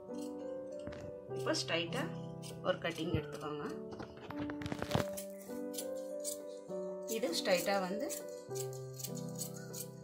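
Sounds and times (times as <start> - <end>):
piano music: 0.0 - 10.0
scissors snipping fabric: 0.0 - 10.0.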